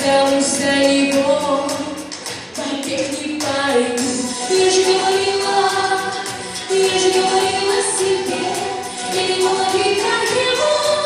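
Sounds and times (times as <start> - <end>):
musical accompaniment: 0.0 - 11.0
group of voices singing: 3.7 - 11.0.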